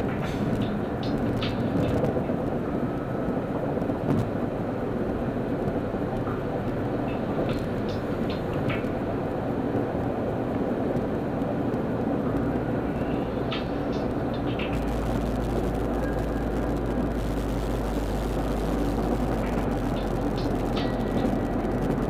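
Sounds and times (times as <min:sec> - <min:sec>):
car road and engine rumble: 0:00.0 - 0:22.0.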